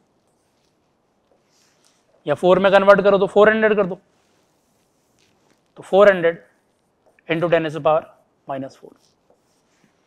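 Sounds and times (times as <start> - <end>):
marker pen writing on whiteboard: 0.1 - 5.9, 8.7 - 10.0.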